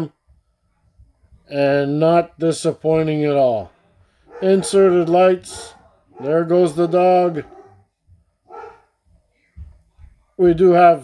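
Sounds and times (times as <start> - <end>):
dog barking faintly: 4.2 - 10.3.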